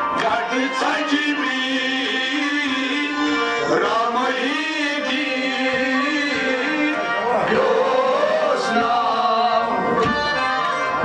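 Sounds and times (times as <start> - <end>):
harmonium drone: 0.0 - 11.0
men singing long held notes: 0.1 - 10.2.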